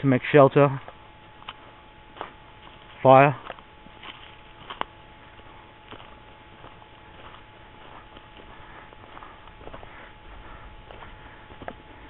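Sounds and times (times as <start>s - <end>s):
footsteps crunching on dry leaves: 0.6s - 12.0s.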